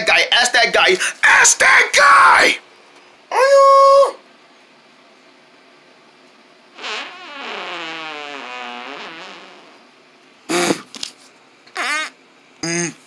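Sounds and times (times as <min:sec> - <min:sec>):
short loud vocal sounds: 0:11.8 - 0:13.0
person groaning: 0:12.6 - 0:13.0.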